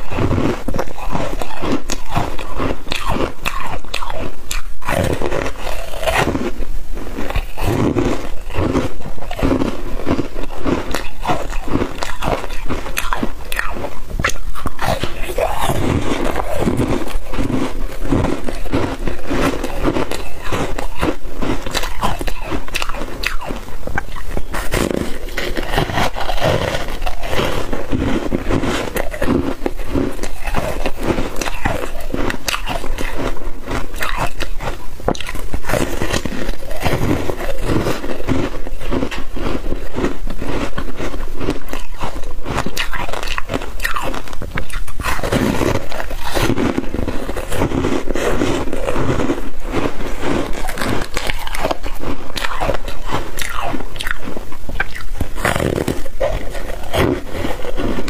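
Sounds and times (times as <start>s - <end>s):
frozen foam crunching between teeth: 0.0s - 58.0s.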